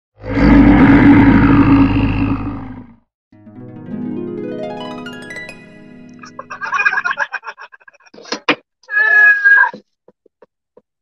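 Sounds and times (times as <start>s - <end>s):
loud roar: 0.2s - 3.0s
music: 3.3s - 7.0s.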